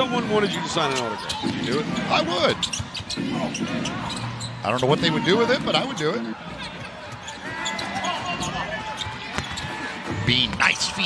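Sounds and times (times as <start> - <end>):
arena background noise: 0.0 - 11.0.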